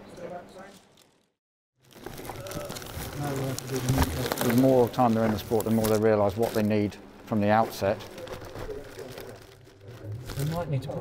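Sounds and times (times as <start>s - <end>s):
plastic bag crinkling: 0.6s - 11.0s.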